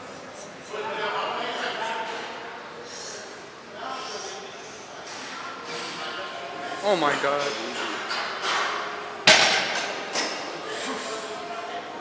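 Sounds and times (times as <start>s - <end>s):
barbell dropped on wooden platform: 9.3s - 9.8s.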